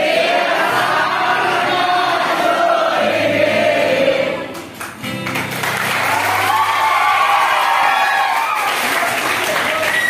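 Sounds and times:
young women singing together: 0.0 - 4.6
acoustic guitar: 0.0 - 10.0.

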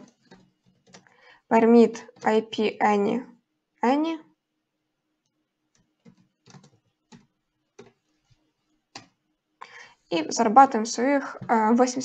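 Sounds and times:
faint keyboard typing: 0.0 - 2.7, 5.2 - 9.2.

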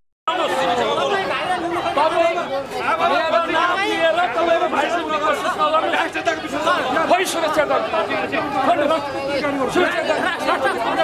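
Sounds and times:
men talking over one another: 0.3 - 11.0.

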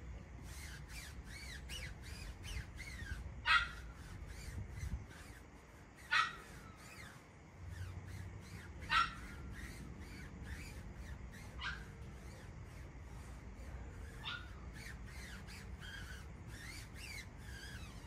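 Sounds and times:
faint high chirping: 0.0 - 18.0.

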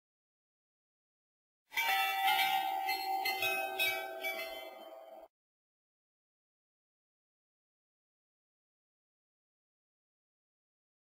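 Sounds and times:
bell-like chimes: 1.7 - 5.3.

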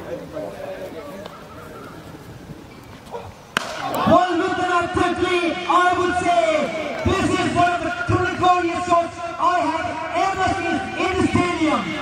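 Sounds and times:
cricket bat striking ball: 3.6 - 4.1
people shouting: 3.6 - 12.0.

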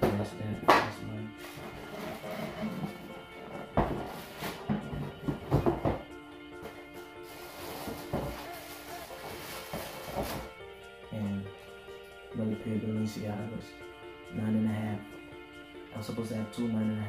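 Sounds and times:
objects thumping and knocking: 0.0 - 10.5
background music with held tones: 0.0 - 17.0.

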